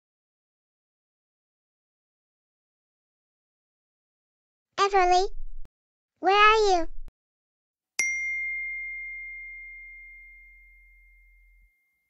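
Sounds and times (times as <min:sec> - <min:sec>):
phone notification ding: 0:08.0 - 0:11.3.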